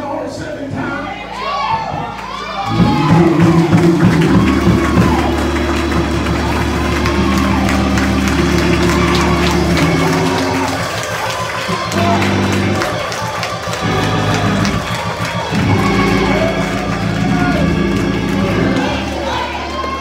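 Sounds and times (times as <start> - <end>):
congregation calling out and singing: 0.0 - 20.0
sustained chords with deep bass: 2.5 - 20.0.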